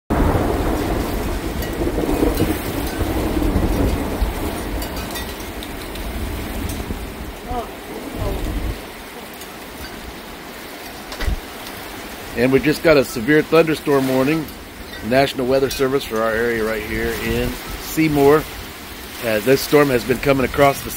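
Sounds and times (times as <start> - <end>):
gusting wind: 0.1 - 20.9
heavy rain: 0.1 - 20.9
thunder rumble: 0.1 - 20.9.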